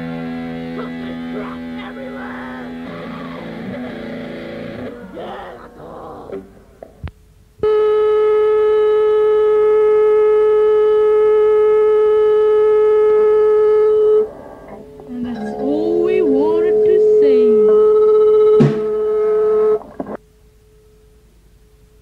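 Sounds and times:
voices talking: 0:00.0 - 0:07.0, 0:14.7 - 0:18.7.

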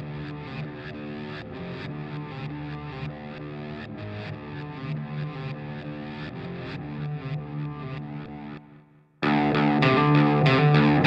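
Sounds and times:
electric guitar with effects: 0:00.0 - 0:11.0.

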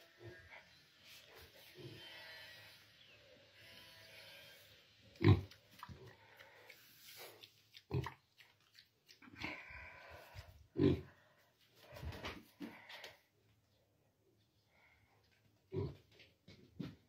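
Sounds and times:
pig grunting: 0:03.6 - 0:06.6, 0:09.2 - 0:11.2.

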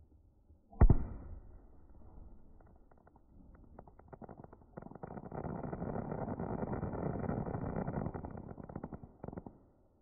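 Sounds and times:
firework bang and crack: 0:00.8 - 0:02.8.

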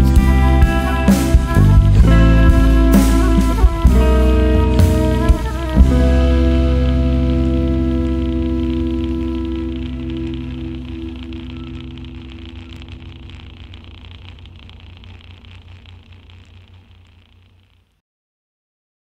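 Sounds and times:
jazz band final chord: 0:00.0 - 0:14.2.

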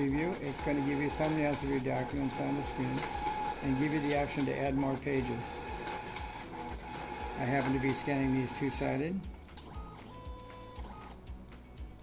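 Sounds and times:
document scanner running: 0:00.0 - 0:11.3.

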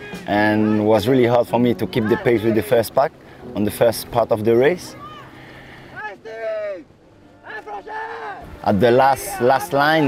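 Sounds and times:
water noise: 0:00.0 - 0:10.0
wind: 0:00.0 - 0:10.0
person shouting: 0:07.4 - 0:08.5.

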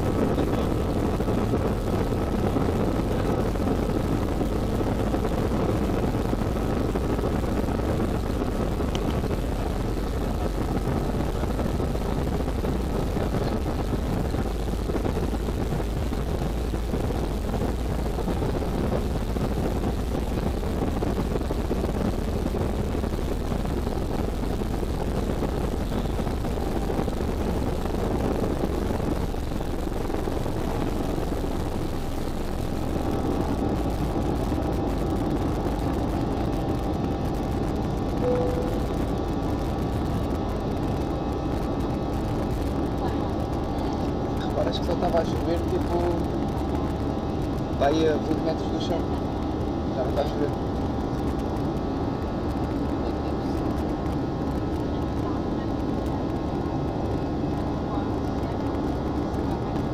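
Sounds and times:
faint engine whine: 0:00.0 - 0:59.9
heavy runway rumble: 0:00.0 - 0:59.9
jet engines at takeoff power: 0:00.0 - 0:59.9.

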